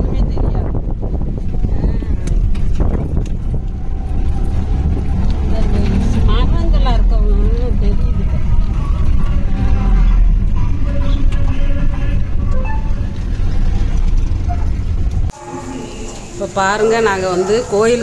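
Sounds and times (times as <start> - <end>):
auto-rickshaw engine rumbling: 0.0 - 18.0
voices with wavering pitch: 15.3 - 18.0.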